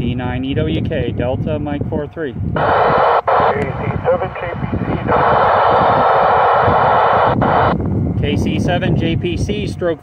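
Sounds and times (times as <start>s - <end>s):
loud rushing radio static: 2.6s - 7.8s.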